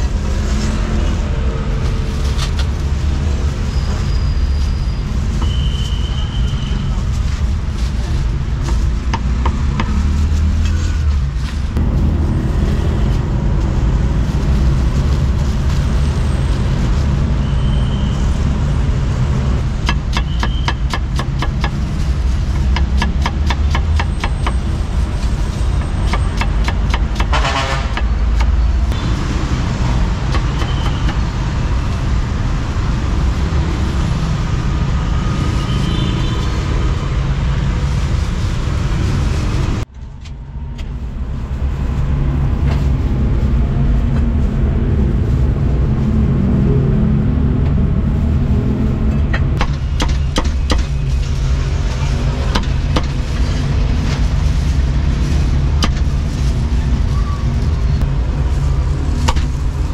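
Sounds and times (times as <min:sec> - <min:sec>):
road traffic noise: 0:00.0 - 0:59.9.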